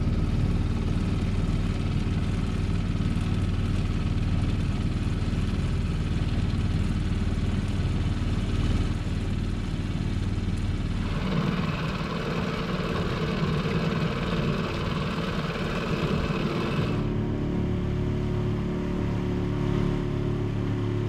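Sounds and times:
outboard motor running: 0.0 - 21.0.

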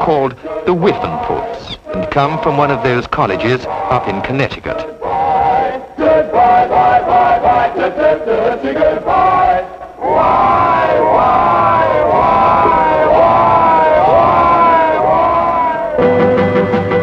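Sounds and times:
male choir singing in unison: 0.0 - 17.0.

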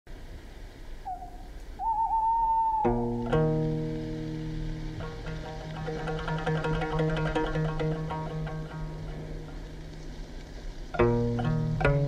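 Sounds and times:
faint hiss: 0.1 - 12.0
soft whistle-like tone: 1.1 - 3.0.

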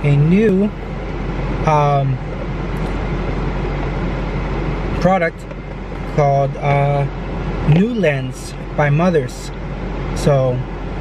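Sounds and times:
car cabin hum and rushing: 0.0 - 11.0.

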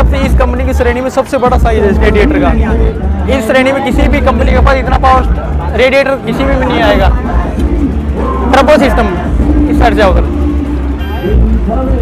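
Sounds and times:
steady low rumble: 0.0 - 12.0
indistinct background voices: 1.8 - 12.0
high-pitched tone: 2.0 - 12.0.

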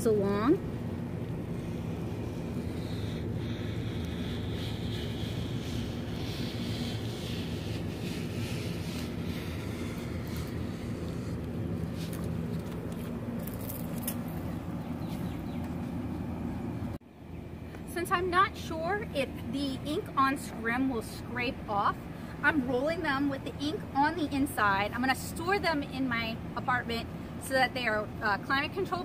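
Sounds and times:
low mechanical hum: 0.0 - 29.0.

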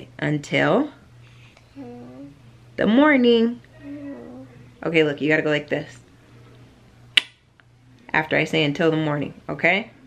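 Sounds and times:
finger snap: 7.2 - 7.4.

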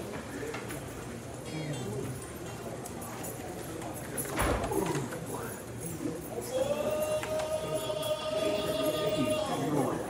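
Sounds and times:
faint murmured voices: 0.0 - 10.0.

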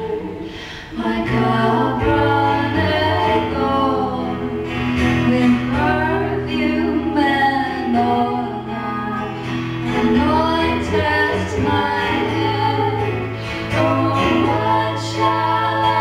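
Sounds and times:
women singing a hymn in harmony: 0.0 - 16.0.

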